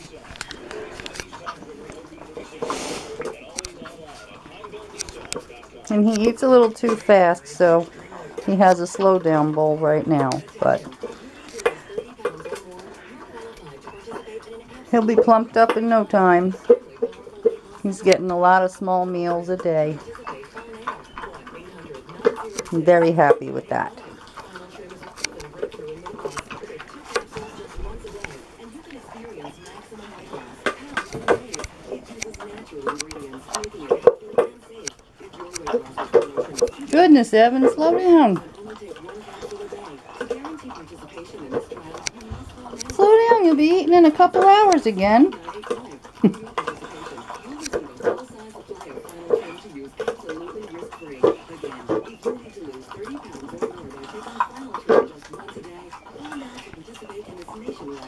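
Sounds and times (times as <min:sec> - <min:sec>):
dog eating from plastic bowl: 0:00.0 - 0:58.0
faint voices talking: 0:00.0 - 0:58.0
food clicking against bowl: 0:24.0 - 0:37.0.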